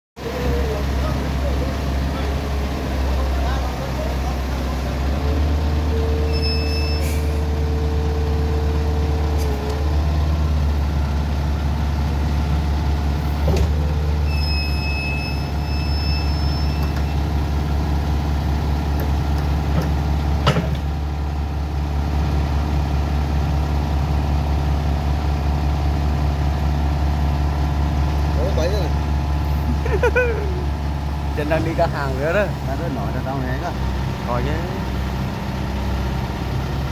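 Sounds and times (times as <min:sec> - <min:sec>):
excavator diesel engine running: 0:00.2 - 0:36.9
hydraulic whine: 0:04.8 - 0:10.8, 0:13.1 - 0:18.0.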